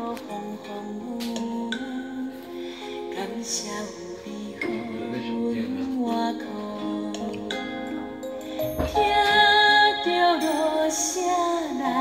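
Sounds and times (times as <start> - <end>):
sustained instrumental backing: 0.0 - 12.0
woman singing slow melody: 0.0 - 12.0.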